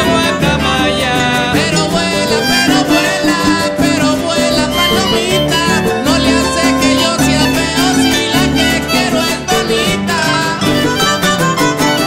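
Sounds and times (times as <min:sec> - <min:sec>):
harp picking bass and melody: 0:00.0 - 0:12.0
small guitars strummed: 0:00.0 - 0:12.0.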